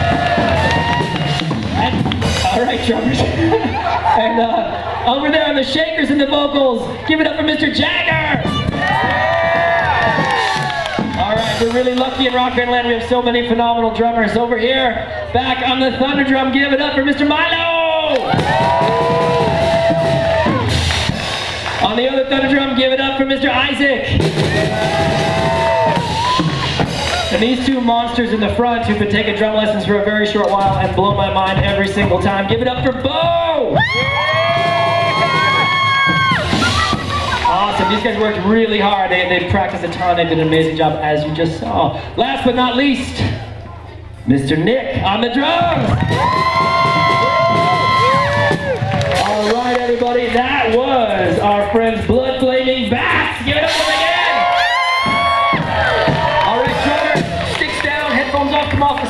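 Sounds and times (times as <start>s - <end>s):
audience cheering: 0.0s - 5.8s, 8.1s - 12.6s, 18.0s - 22.6s, 24.2s - 27.8s, 33.6s - 40.6s, 45.6s - 50.8s, 53.2s - 59.0s
high whooping voices: 17.6s - 20.8s, 24.3s - 27.5s, 33.6s - 39.2s, 45.7s - 49.8s.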